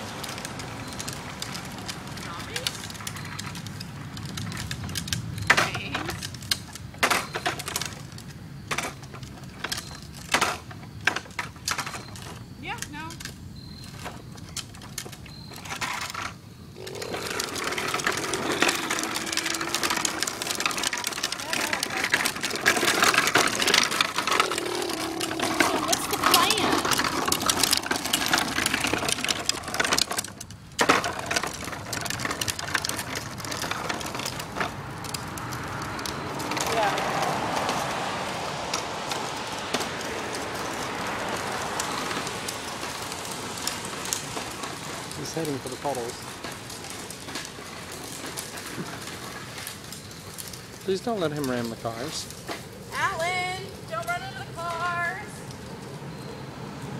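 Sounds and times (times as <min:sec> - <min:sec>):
plastic wheels rattling over concrete: 0:00.0 - 0:56.9.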